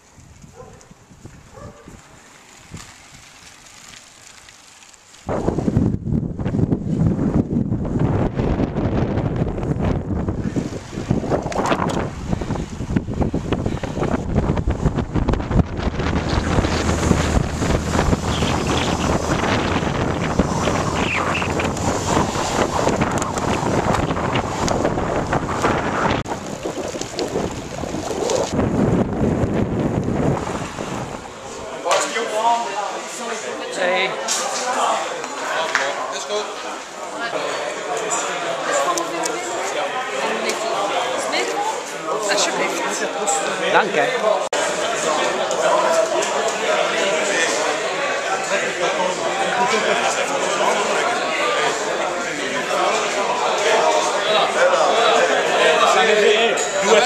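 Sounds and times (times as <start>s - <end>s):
wind noise on microphone: 0.0s - 3.9s, 5.2s - 31.8s.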